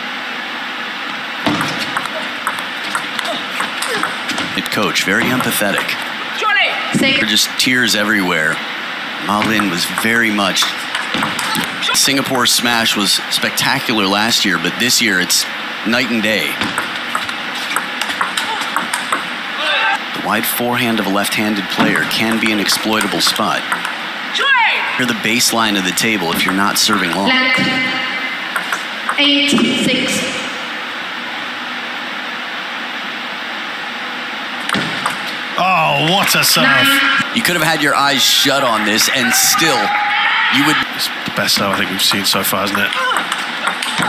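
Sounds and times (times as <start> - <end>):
arena background noise: 0.0 - 44.0
hall background noise: 0.0 - 44.0
table tennis ball clicking: 1.5 - 4.2, 16.6 - 19.3, 22.3 - 24.0, 41.6 - 44.0.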